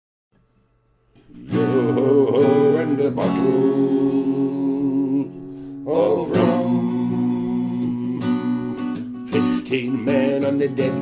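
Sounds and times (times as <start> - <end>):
acoustic guitar strumming: 1.1 - 11.0
man singing: 1.3 - 11.0.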